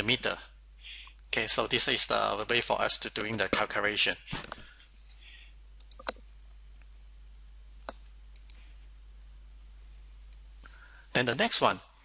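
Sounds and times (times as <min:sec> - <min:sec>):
faint low hum: 0:00.0 - 0:12.0
mouse button clicks: 0:07.9 - 0:08.6.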